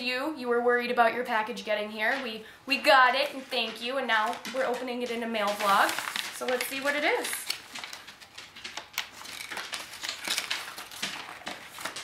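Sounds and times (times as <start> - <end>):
paper rustling and crinkling: 2.0 - 12.0.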